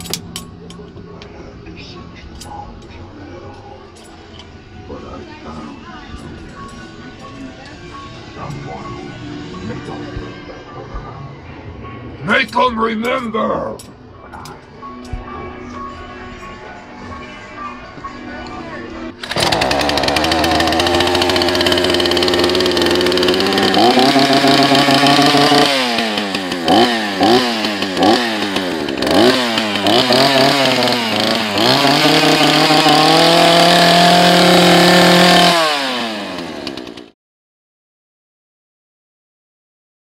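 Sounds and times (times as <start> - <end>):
chainsaw revving: 19.2 - 37.2.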